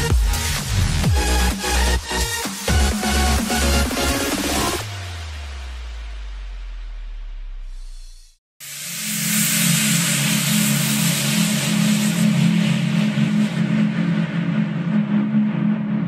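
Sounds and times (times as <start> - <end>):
loud rush of hiss: 8.6 - 13.5
low rumbling drone: 9.4 - 16.0.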